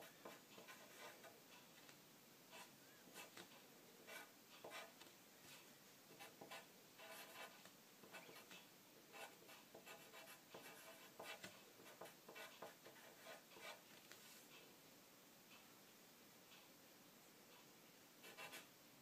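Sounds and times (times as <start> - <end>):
pencil scratching on paper: 0.0 - 1.3, 2.5 - 5.0, 6.1 - 13.9, 18.2 - 18.7.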